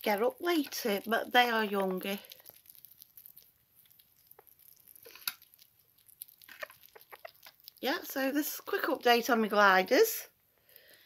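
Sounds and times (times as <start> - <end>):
sugar gliders scrabbling and nibbling: 0.0 - 11.0.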